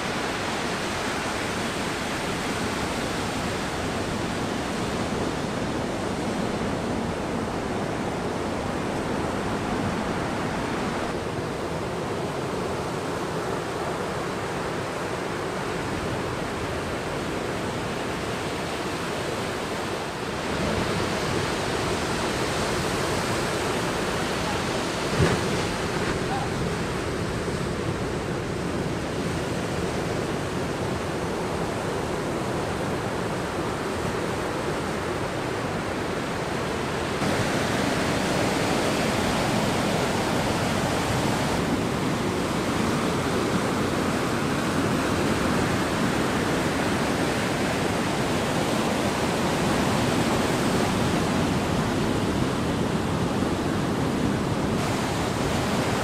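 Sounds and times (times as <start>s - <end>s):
waves breaking on beach: 0.0s - 56.0s.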